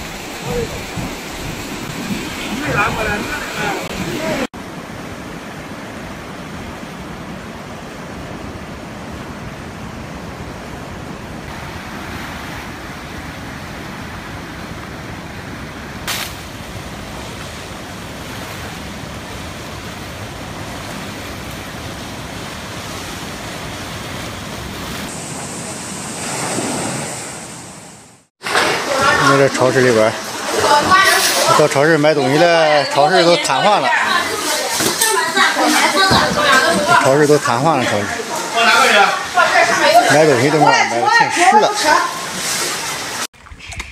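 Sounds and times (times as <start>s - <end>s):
heavy rainstorm: 0.0s - 25.8s, 28.4s - 43.3s.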